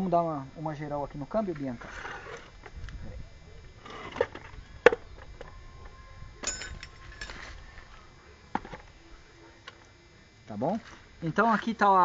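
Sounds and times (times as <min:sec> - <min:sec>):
scraping and rustling: 0:01.5 - 0:02.8.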